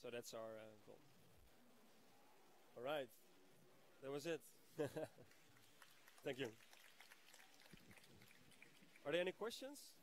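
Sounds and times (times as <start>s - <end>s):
faint scattered applause: 5.2s - 9.3s.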